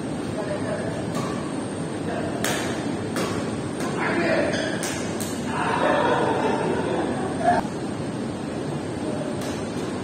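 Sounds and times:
voices in a hall: 0:00.3 - 0:09.7
rackets hitting shuttlecock: 0:01.1 - 0:01.5, 0:02.4 - 0:05.5, 0:09.4 - 0:10.0.

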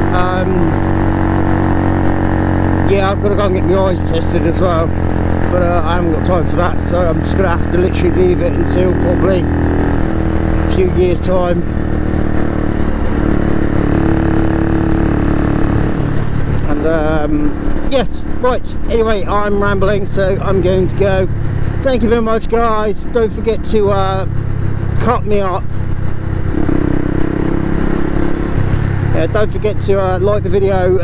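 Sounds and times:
motorcycle engine cruising: 0:00.0 - 0:31.0.

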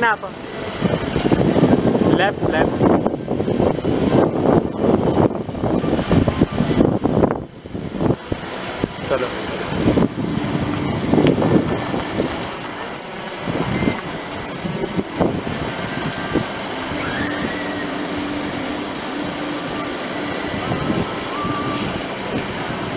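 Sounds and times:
car engine and tyres running: 0:00.0 - 0:22.9
wind noise on microphone: 0:00.0 - 0:22.9.

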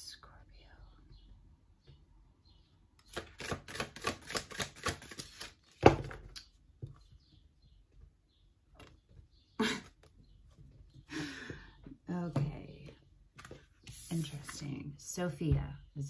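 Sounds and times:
cards being shuffled: 0:03.1 - 0:05.8.

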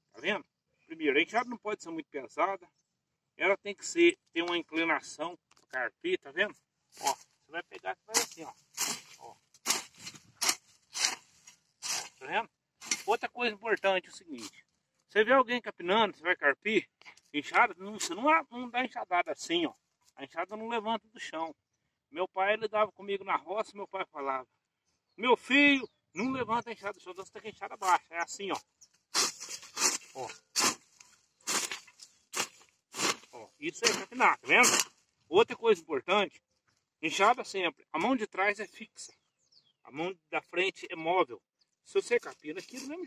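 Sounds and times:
hoe scraping and chopping soil: 0:08.1 - 0:13.3, 0:29.1 - 0:35.1.

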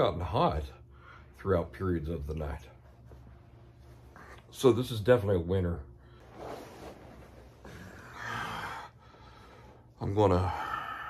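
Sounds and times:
quilt rustling: 0:02.6 - 0:04.9, 0:06.1 - 0:08.1
man breathing out heavily: 0:07.7 - 0:11.0.

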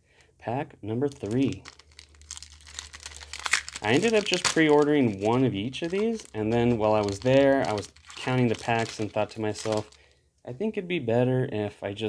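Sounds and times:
person speaking: 0:00.4 - 0:02.0, 0:02.6 - 0:12.0
foil wrapper crinkling: 0:01.0 - 0:10.1.

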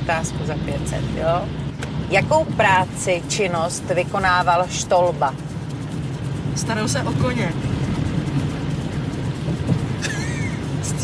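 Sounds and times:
car engine rumble and road noise: 0:00.0 - 0:11.0.

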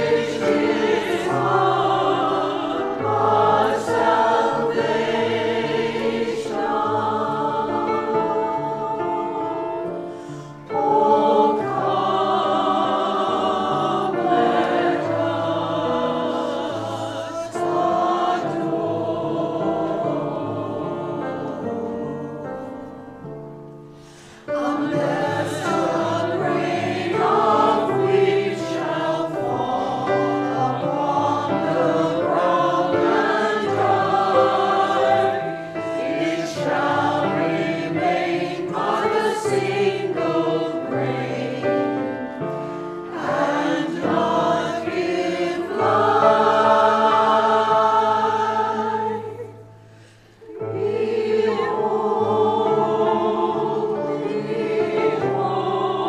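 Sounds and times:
church choir singing a hymn: 0:00.0 - 0:56.0.

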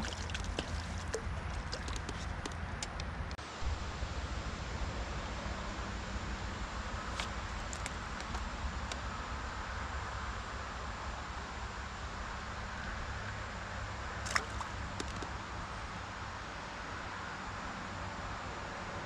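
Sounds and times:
steady hiss over low rumble: 0:00.0 - 0:19.0.

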